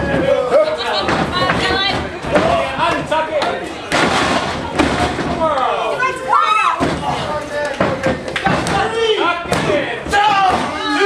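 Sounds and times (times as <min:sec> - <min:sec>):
crowd shouting: 0:05.9 - 0:07.2.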